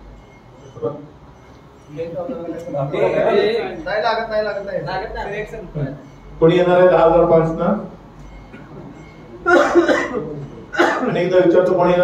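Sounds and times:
person coughing: 9.5s - 11.2s.

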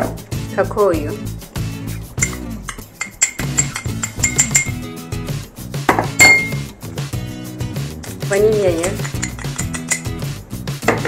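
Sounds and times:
background music: 0.0s - 11.0s
metal spoon clinking glass bowl: 2.2s - 4.9s, 6.2s - 6.7s, 8.0s - 10.2s.

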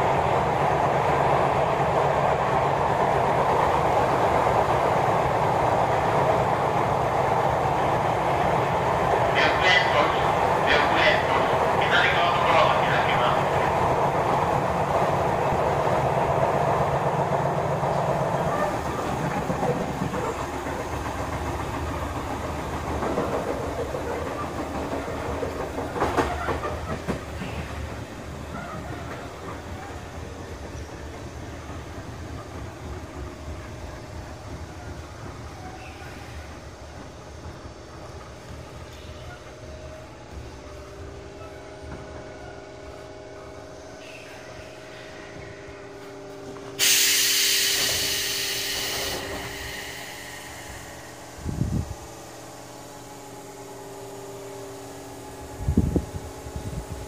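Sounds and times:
train wheels rumbling over rail joints: 0.0s - 57.0s.

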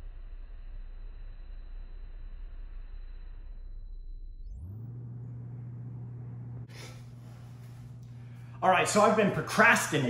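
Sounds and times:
low rumble: 0.0s - 9.5s
steady low hum: 0.0s - 10.0s.

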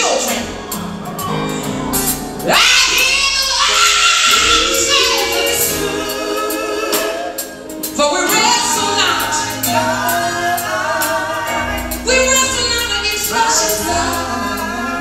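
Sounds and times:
drums: 0.0s - 15.0s
electric bass: 0.4s - 15.0s
women singing gospel: 2.4s - 15.0s.

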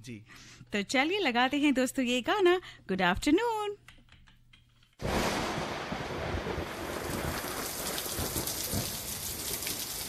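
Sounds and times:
heavy rain hiss: 5.0s - 10.0s
low rumble of thunder: 5.0s - 10.0s.

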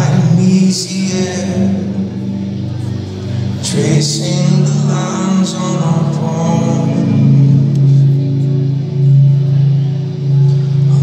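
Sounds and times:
man singing: 0.0s - 8.2s, 10.8s - 11.0s
acoustic guitar: 0.0s - 11.0s
live rock band music: 0.0s - 11.0s.

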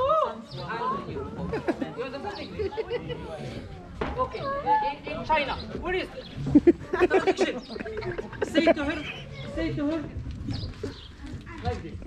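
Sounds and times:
crowd voices talking and calling: 0.0s - 12.0s.

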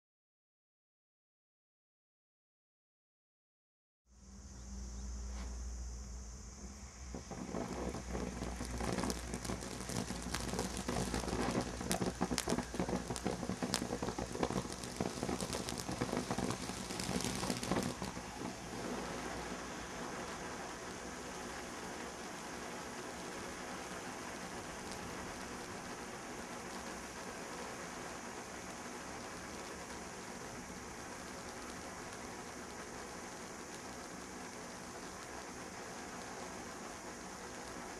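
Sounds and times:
fireworks fountain hissing: 5.6s - 37.9s
fireworks fountain crackling pops: 6.6s - 37.9s.

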